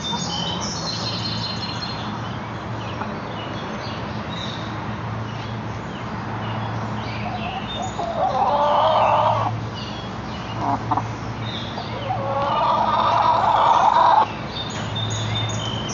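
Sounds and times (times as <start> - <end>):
chickens calling: 0.0 - 1.5, 7.2 - 14.9.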